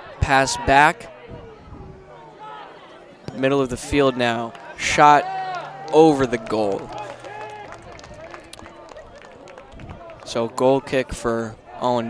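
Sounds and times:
people calling out: 0.0s - 11.8s.

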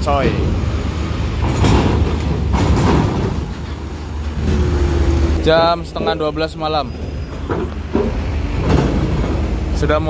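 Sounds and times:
bus diesel engine running: 0.0s - 10.0s
wheels clattering over steel plates: 0.0s - 10.0s.

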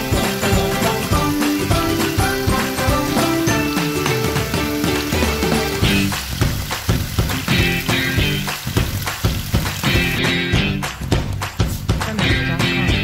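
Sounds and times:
pork ribs sizzling in a pot: 0.0s - 10.8s
background music: 0.0s - 13.0s.

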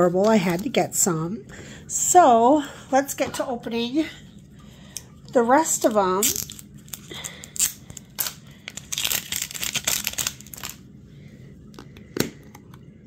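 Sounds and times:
plastic wrapping crinkling: 6.2s - 10.8s.

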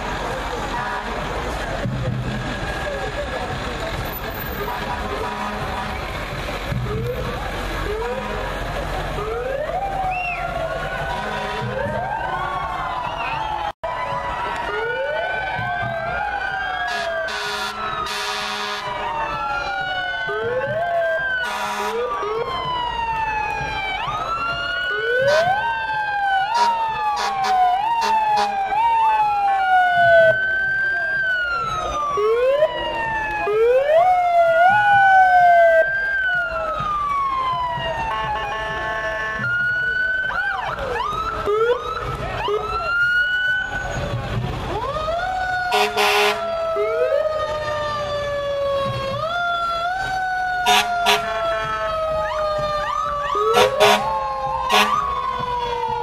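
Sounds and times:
emergency vehicle sirens: 0.0s - 56.0s
air horn blasts: 5.1s - 6.2s, 11.0s - 12.0s, 16.9s - 19.0s, 21.4s - 22.1s, 26.5s - 28.6s, 38.1s - 39.6s, 45.7s - 46.5s, 50.6s - 51.7s, 53.5s - 55.1s.

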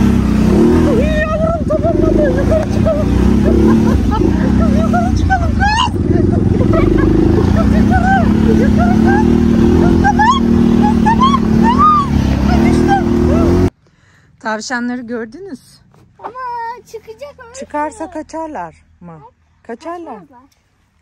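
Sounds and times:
atv engine running: 0.0s - 13.7s.

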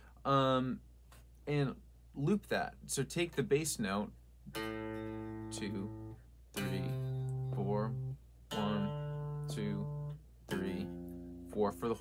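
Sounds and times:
electric guitar arpeggiated chords: 4.5s - 11.6s.

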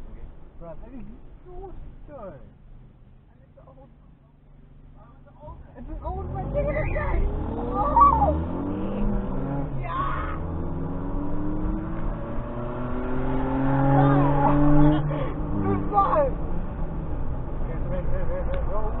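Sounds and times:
car engine accelerating hard: 4.9s - 19.0s.

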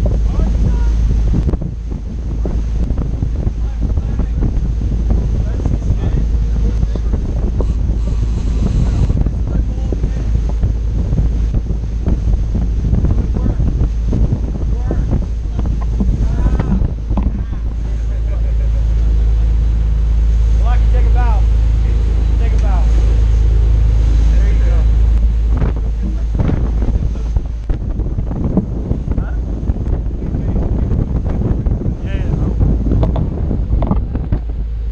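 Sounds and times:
boat engines droning: 0.0s - 34.9s
wind buffeting microphone: 0.0s - 34.9s.

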